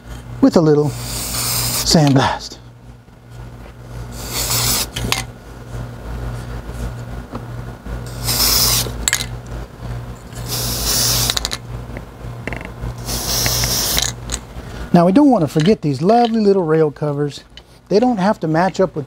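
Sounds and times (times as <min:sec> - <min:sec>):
steady low hum: 0:00.0 - 0:19.0
spray paint can hissing: 0:01.0 - 0:02.0, 0:04.2 - 0:05.0, 0:08.1 - 0:09.0, 0:10.5 - 0:11.5, 0:13.0 - 0:14.2.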